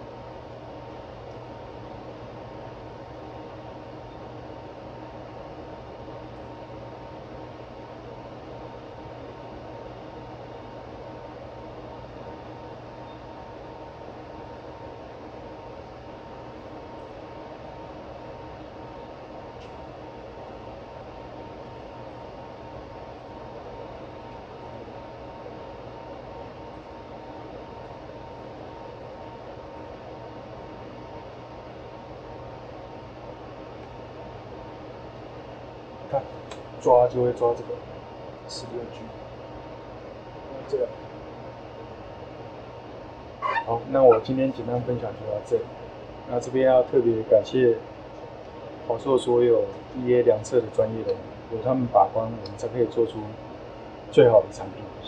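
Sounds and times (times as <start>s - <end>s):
cooling fans noise: 0.0s - 55.0s.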